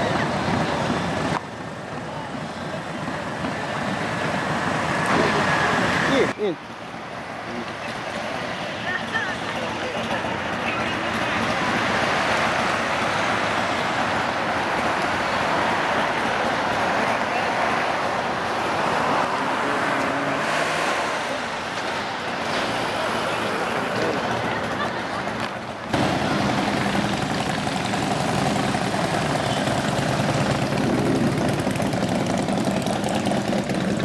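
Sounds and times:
motorcycle engines running: 0:00.0 - 0:20.4, 0:21.2 - 0:34.0.

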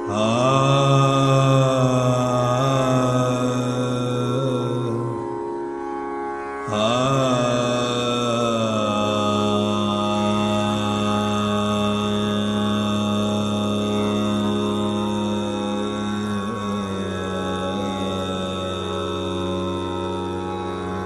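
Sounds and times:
man singing classical vocal: 0:00.0 - 0:05.5, 0:06.6 - 0:21.0
steady drone: 0:00.0 - 0:21.0.

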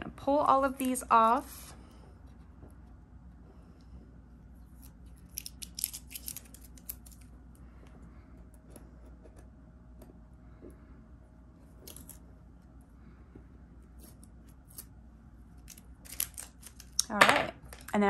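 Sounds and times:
tweezers clicking and scratching: 0:04.8 - 0:07.3.

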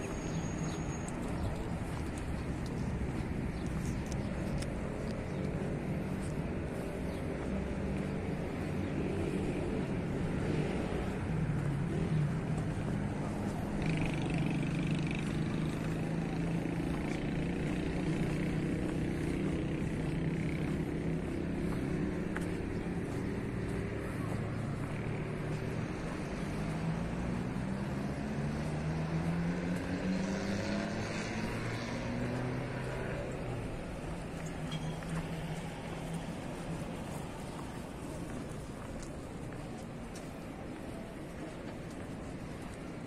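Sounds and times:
car engines running: 0:00.0 - 0:43.0
car engine speeding up: 0:26.5 - 0:33.4.

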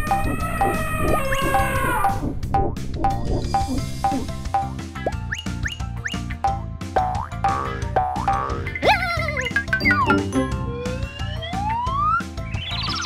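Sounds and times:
cartoon music with steady beat: 0:00.0 - 0:13.0
rising whistle-like glide: 0:10.7 - 0:13.0.

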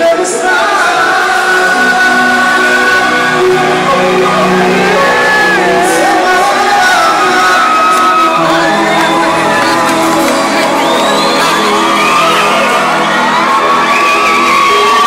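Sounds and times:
live band music: 0:00.0 - 0:15.0
person singing: 0:00.0 - 0:15.0.

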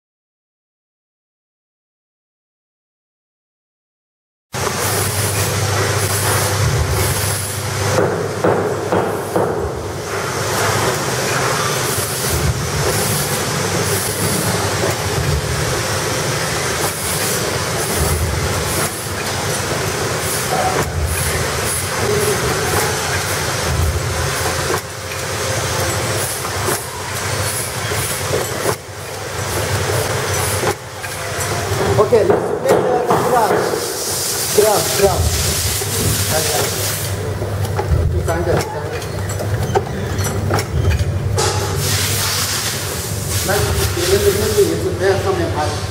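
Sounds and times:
packing machine clattering: 0:04.6 - 0:33.6.

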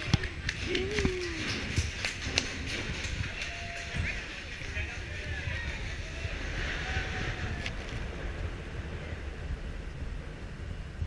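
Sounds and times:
roller coaster chain lift rumble: 0:00.0 - 0:11.0.

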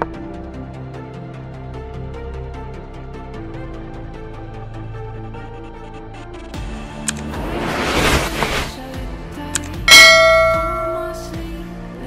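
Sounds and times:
bright bell ding: 0:09.7 - 0:11.4.

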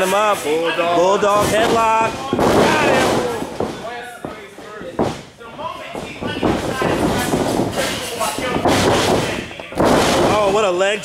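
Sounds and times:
bodies thudding on wrestling mat: 0:01.4 - 0:05.3, 0:06.0 - 0:10.5.

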